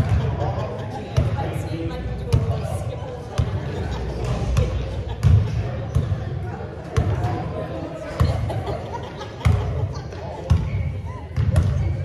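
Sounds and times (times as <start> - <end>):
basketball bouncing on gym floor: 4.6 - 6.2, 10.5 - 10.8, 11.4 - 12.0.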